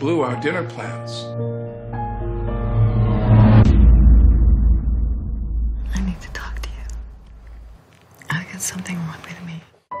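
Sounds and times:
deep low rumble: 2.0s - 7.8s
person whispering: 5.9s - 7.1s, 8.3s - 9.7s.

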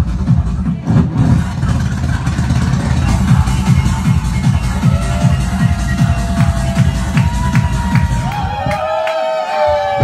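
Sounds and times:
techno through a pa: 0.0s - 8.8s.

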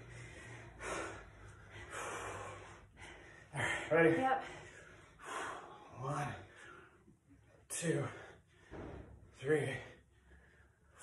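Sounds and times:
person breathing hard: 0.0s - 7.2s.

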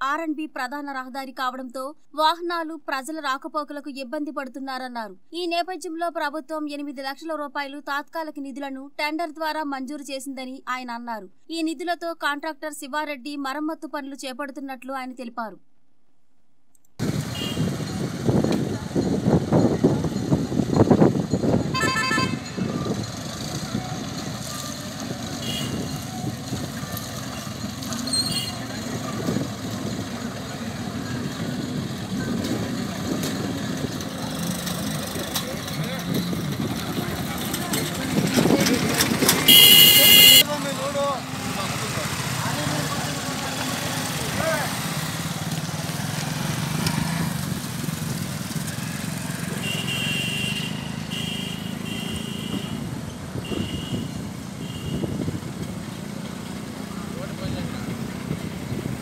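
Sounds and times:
motorcycle engines passing: 17.0s - 59.0s
vehicle horn: 17.3s - 17.8s, 21.7s - 22.9s, 24.5s - 26.1s, 27.3s - 28.8s, 39.5s - 40.6s, 49.5s - 55.2s.

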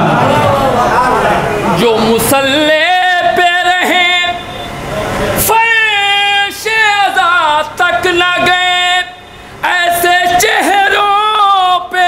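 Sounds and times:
man singing into a microphone: 1.8s - 4.4s, 5.5s - 12.0s.

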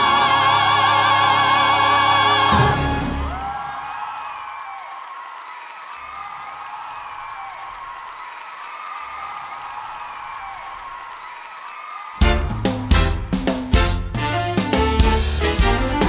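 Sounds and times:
music: 0.0s - 3.6s, 12.2s - 16.0s
audience applauding and cheering: 0.0s - 16.0s
people whooping: 3.2s - 13.0s.

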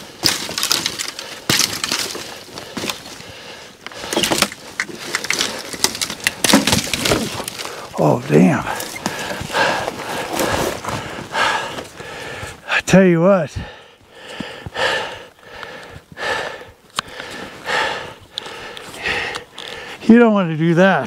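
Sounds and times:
man breathing hard: 0.9s - 5.8s, 7.4s - 12.8s, 13.5s - 20.0s.

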